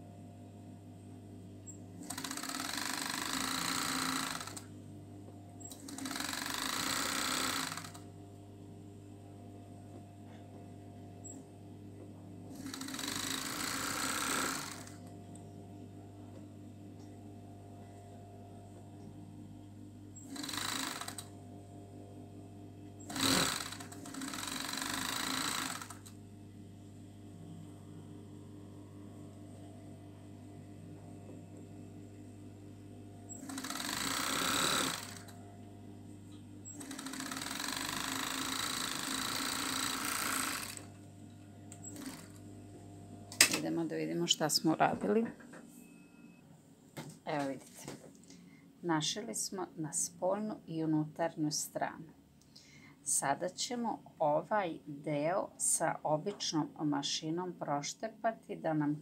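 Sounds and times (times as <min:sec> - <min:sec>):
overlock machine stitching: 0:02.0 - 0:04.7, 0:05.6 - 0:08.0, 0:12.5 - 0:15.0, 0:20.2 - 0:21.3, 0:23.0 - 0:26.2, 0:33.3 - 0:35.4, 0:36.7 - 0:40.9, 0:41.8 - 0:42.4
low motor hum: 0:21.0 - 0:45.7.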